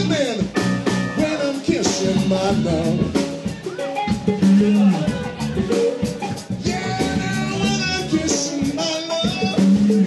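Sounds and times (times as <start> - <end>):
drum kit: 0.0 - 10.0
electric bass: 0.0 - 10.0
electric guitar: 0.0 - 10.0
person singing: 1.2 - 10.0.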